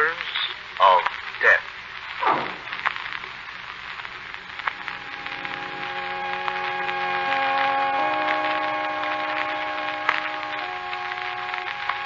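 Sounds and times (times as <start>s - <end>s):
recording hiss and crackle: 0.0s - 12.0s.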